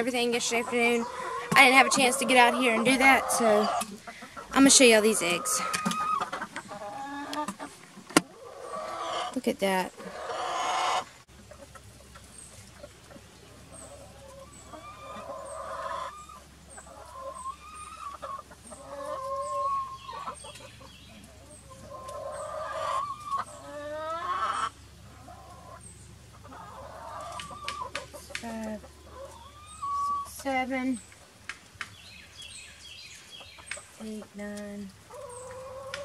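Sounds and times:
hens clucking and calling: 0.0s - 36.0s.

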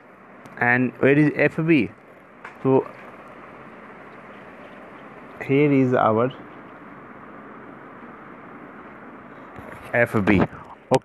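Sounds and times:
room tone hiss: 0.0s - 11.0s.

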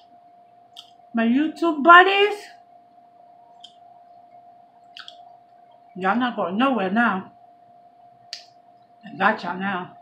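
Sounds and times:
faint steady tone: 0.0s - 10.0s
mouth click while eating: 0.7s - 1.0s, 3.6s - 3.8s, 4.9s - 5.3s, 8.3s - 8.6s.

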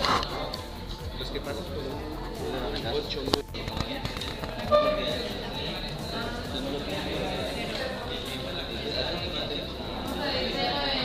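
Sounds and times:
students talking: 0.0s - 11.0s
short loud tone: 4.7s - 5.2s.

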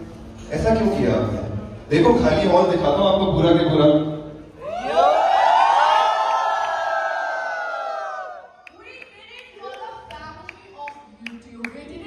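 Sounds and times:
crowd cheering and whooping: 4.6s - 8.8s.

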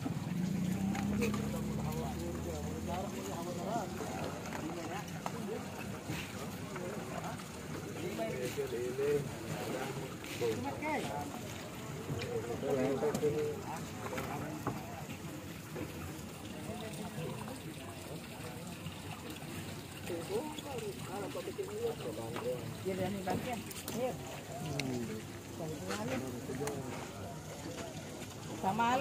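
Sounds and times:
men talking indistinctly: 0.8s - 28.9s.

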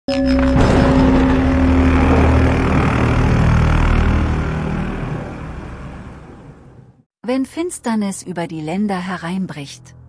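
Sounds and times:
dense rushing rumble: 0.8s - 7.0s.

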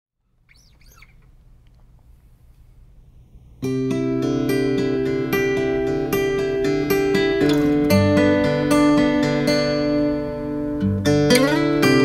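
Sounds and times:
bird chirping: 0.2s - 1.7s
low steady hum: 0.2s - 12.0s.

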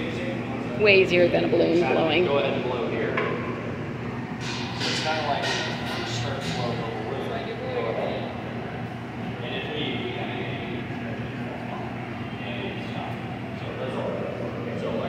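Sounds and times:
furnaces and fans droning: 0.0s - 15.0s.

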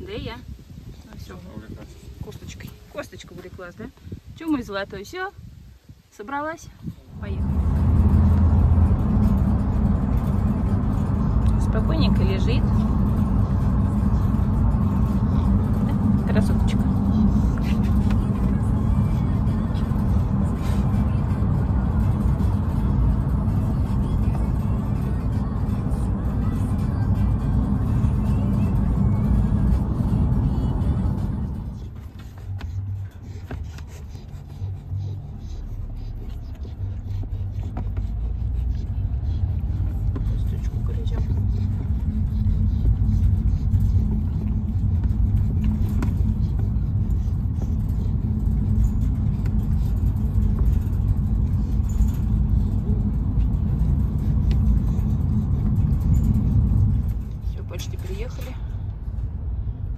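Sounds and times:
road and engine rumble in car: 0.0s - 59.9s.

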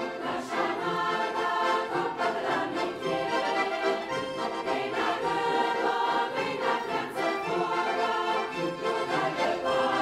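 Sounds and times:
large choir singing in harmony: 0.0s - 10.0s.

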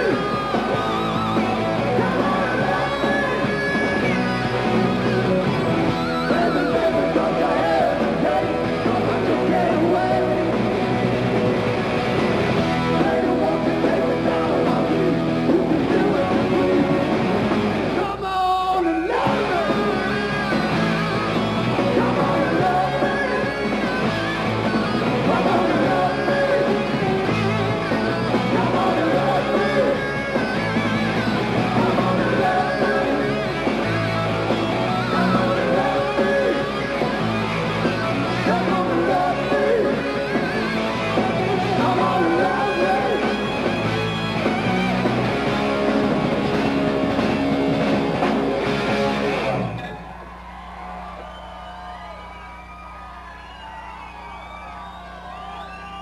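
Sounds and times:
electric guitars: 0.0s - 18.2s, 18.9s - 56.0s
bass: 0.0s - 56.0s
drums: 0.0s - 56.0s
person singing: 1.8s - 3.9s, 6.2s - 10.6s, 21.8s - 23.8s, 25.0s - 27.4s, 28.3s - 30.4s, 31.5s - 33.5s, 34.9s - 37.0s, 38.3s - 40.5s, 41.2s - 43.5s.

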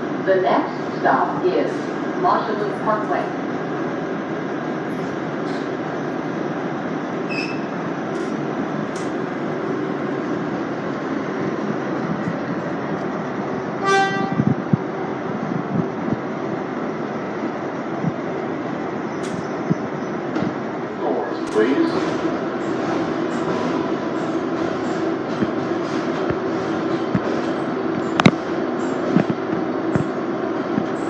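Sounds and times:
subway car running: 0.0s - 31.0s
short horn toot: 13.8s - 14.4s.

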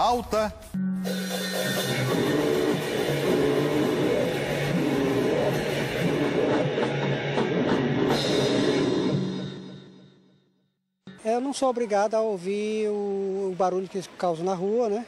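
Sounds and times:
punk band playing: 1.0s - 9.8s.

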